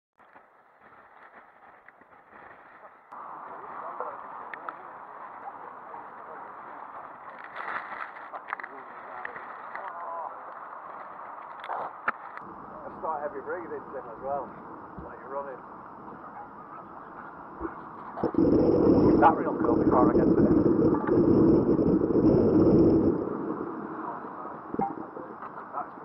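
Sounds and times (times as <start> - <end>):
wind on microphone: 17.6 - 26.0
surf rushing: 18.2 - 25.9.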